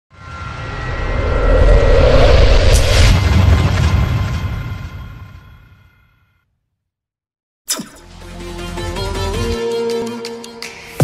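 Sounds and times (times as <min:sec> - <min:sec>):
low rumbling swell: 0:00.1 - 0:05.8.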